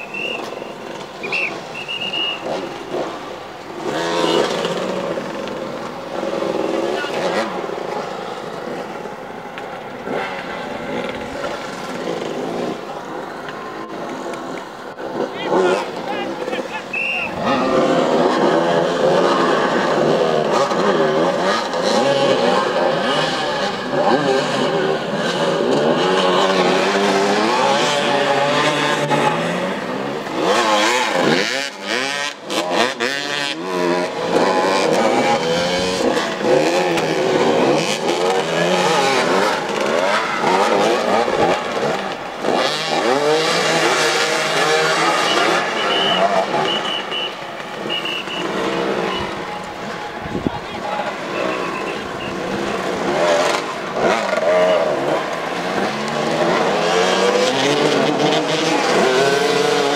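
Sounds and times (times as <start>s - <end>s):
motorcycle engines revving: 0.0s - 59.9s.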